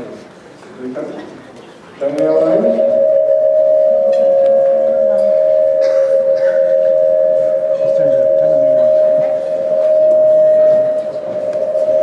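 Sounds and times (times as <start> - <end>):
faint voices: 0.0 - 12.0
microphone feedback tone: 2.0 - 12.0.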